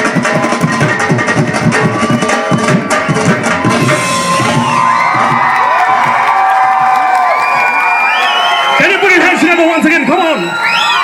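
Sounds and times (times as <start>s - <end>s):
drums played in rapid strokes: 0.0s - 7.4s
crowd cheering and whistling: 0.0s - 11.0s.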